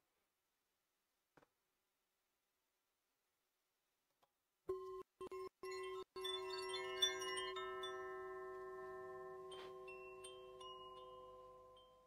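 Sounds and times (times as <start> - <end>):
small high chimes: 5.3 - 12.0
sustained bell-like tone: 5.4 - 12.0.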